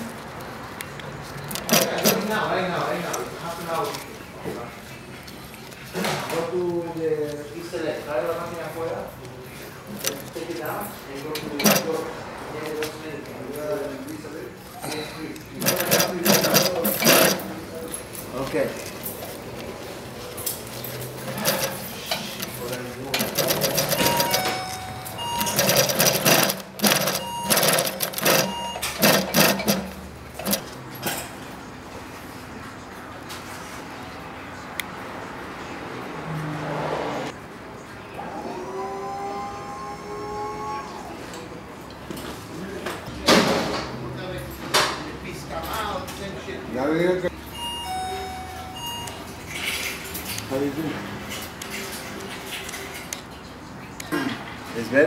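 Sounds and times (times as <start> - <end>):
industrial sewing machine running: 1.5 - 2.5, 11.5 - 12.1, 15.5 - 17.6, 21.1 - 30.8
electronic beeping tones: 23.8 - 29.6.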